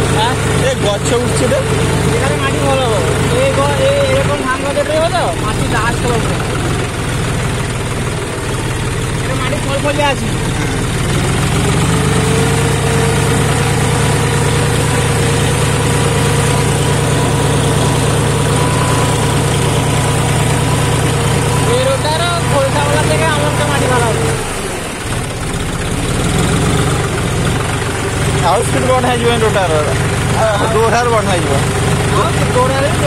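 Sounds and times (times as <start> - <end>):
steady whine: 0.0 - 33.0
tractor diesel engine under load: 0.0 - 33.0.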